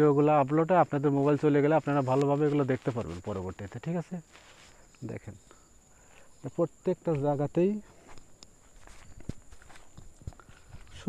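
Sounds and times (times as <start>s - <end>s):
faint footsteps on ground: 0.4s - 5.2s, 6.1s - 11.0s.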